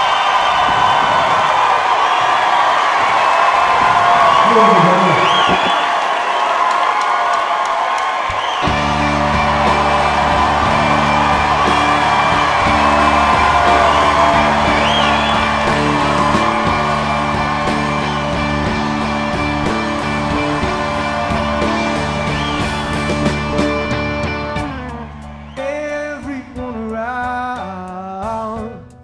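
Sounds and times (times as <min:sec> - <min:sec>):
audience cheering and whooping: 0:00.0 - 0:26.3
audience whistling: 0:00.0 - 0:27.0.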